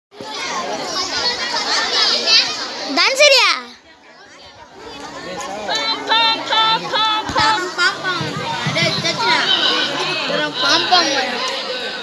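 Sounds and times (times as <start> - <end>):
children chattering and calling out: 0.1 - 12.0.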